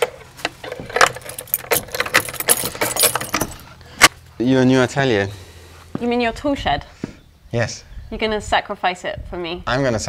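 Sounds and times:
key working in door lock: 0.9 - 3.6
keys jangling: 1.0 - 3.7.

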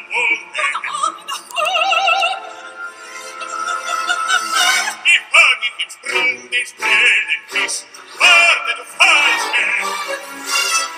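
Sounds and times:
orchestral accompaniment: 2.0 - 10.9
man singing opera with vibrato: 3.6 - 10.5.

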